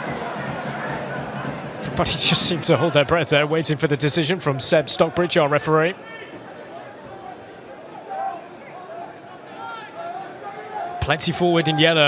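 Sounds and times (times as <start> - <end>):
hum of many voices: 0.0 - 12.0.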